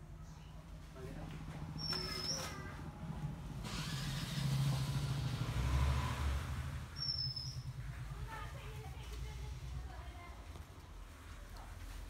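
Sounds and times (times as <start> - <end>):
vehicle engine passing: 0.8 - 12.0.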